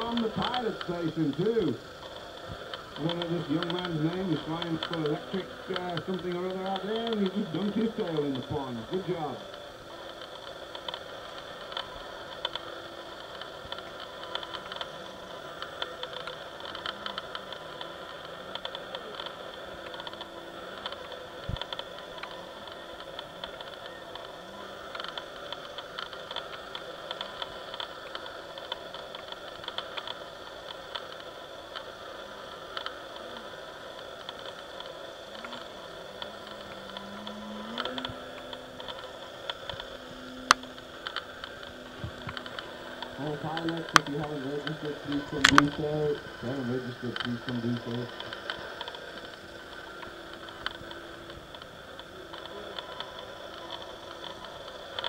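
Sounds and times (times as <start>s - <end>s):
sharp clicks: 0.0s - 24.3s, 34.0s - 55.0s
model plane propeller buzz: 0.0s - 55.0s
steady hiss: 0.0s - 55.0s.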